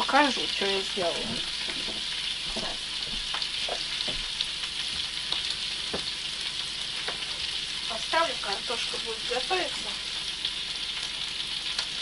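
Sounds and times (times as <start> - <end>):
oil sizzling in frying pan: 0.0 - 12.0.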